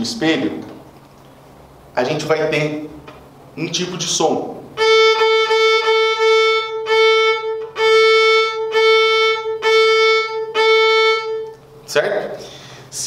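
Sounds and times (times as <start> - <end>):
violin long bow strokes: 4.8 - 11.5.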